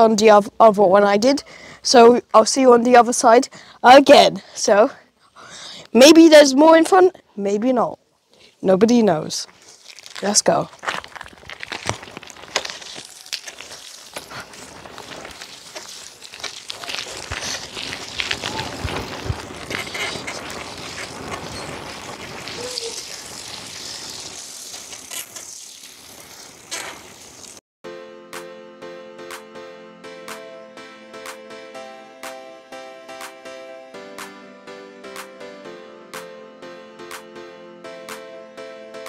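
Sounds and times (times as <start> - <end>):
bicycle tyres on gravel: 9.4 - 27.6
music: 27.8 - 39.0.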